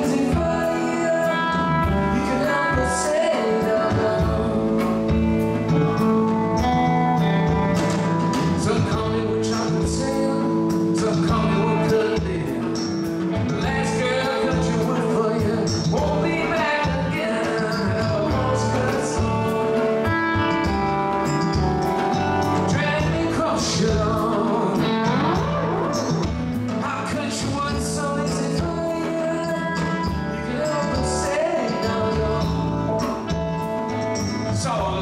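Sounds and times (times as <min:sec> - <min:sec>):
bass guitar: 0:00.0 - 0:35.0
electric guitars playing: 0:00.0 - 0:35.0
drum and cymbal hits: 0:03.9 - 0:35.0.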